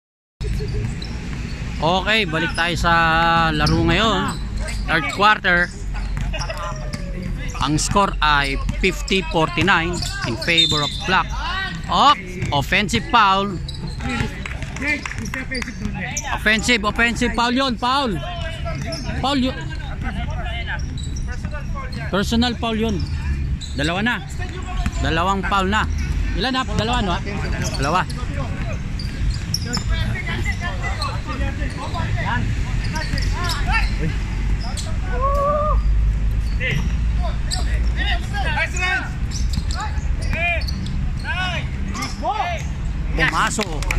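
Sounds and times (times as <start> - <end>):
outdoor basketball court noise: 0.4 - 43.9
man talking: 1.8 - 5.7, 6.5 - 28.8
players' voices: 1.8 - 43.9
basketballs bouncing on hard court: 5.8 - 17.1, 24.4 - 25.2, 25.9 - 30.6.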